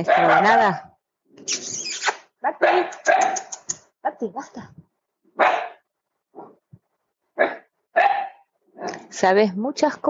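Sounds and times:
dog barking: 0.0s - 0.9s, 2.5s - 3.5s, 5.4s - 6.6s, 7.4s - 9.1s.

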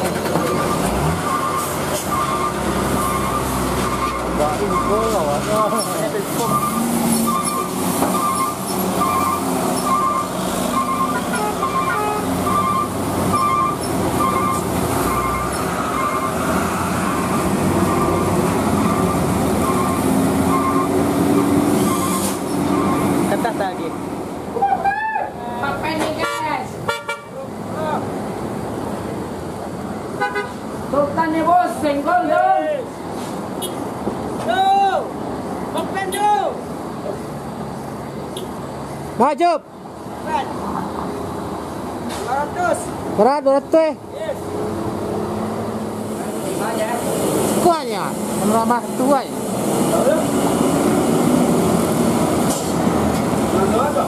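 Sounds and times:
diesel trucks labouring uphill: 0.0s - 54.0s
steady traffic: 0.0s - 54.0s
short high beeps: 6.4s - 16.4s.

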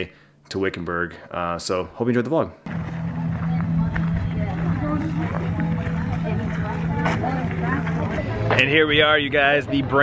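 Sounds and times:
steady low hum: 2.7s - 8.5s
faint voices talking: 3.1s - 10.0s.

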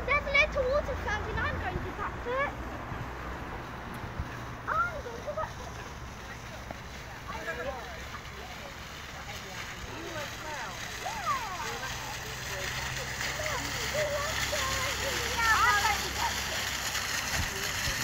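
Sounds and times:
children chattering: 0.0s - 3.5s, 4.1s - 18.0s
fountain splashing onto rocks: 0.0s - 18.0s.

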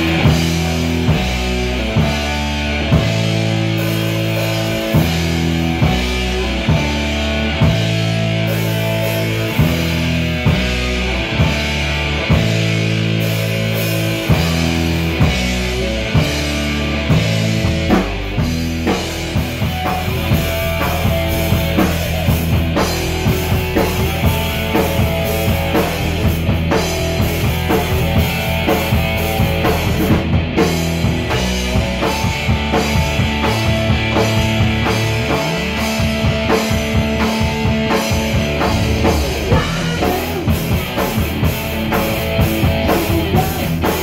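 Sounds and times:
bass guitar: 0.0s - 44.0s
drum kit beat: 0.0s - 44.0s
electric guitar: 0.0s - 44.0s.

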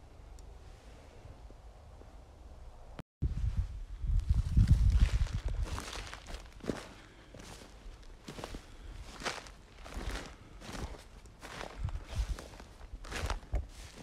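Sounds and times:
footsteps on frosty grass: 3.3s - 14.0s.

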